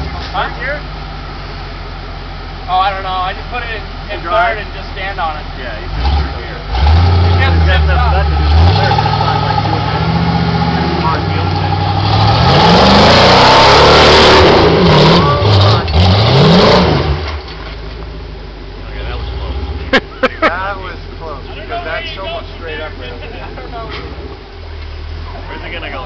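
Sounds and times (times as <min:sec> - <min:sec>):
engine revving hard: 0:05.9 - 0:17.3.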